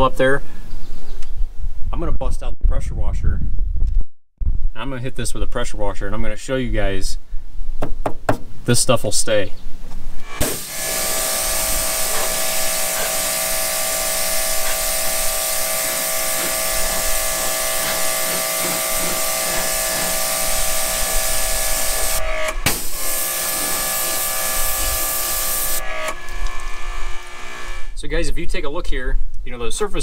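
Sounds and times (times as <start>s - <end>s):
pump whine: 10.2s - 28.0s
pressure washer spraying water: 10.3s - 27.9s.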